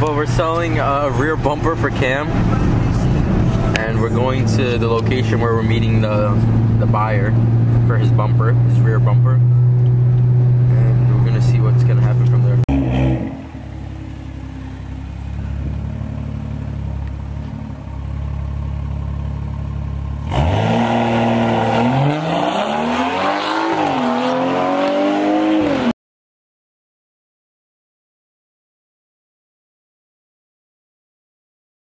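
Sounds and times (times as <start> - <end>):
low rumble: 0.0 - 20.3
car engine and road drone: 0.0 - 25.9
car engine revving: 0.0 - 25.9.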